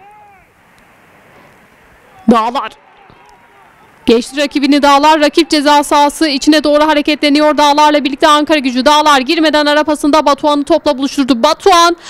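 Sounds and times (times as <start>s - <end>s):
low steady hiss: 0.0s - 12.0s
faint distant voices: 1.3s - 8.0s.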